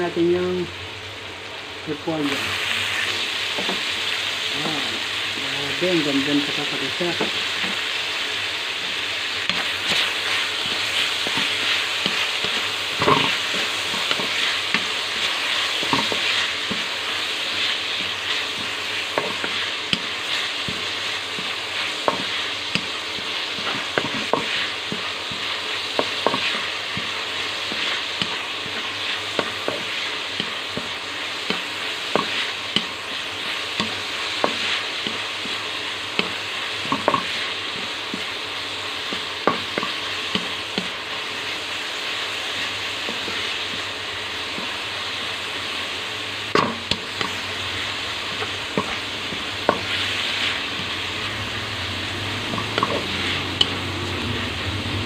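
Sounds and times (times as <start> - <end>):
vegetables sizzling in wok: 0.0 - 55.0.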